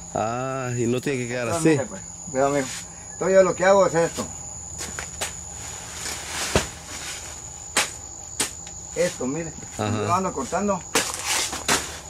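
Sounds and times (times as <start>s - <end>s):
high-pitched insect call: 0.0s - 12.0s
machete chopping plant: 6.0s - 6.8s, 7.7s - 8.7s, 10.9s - 12.0s.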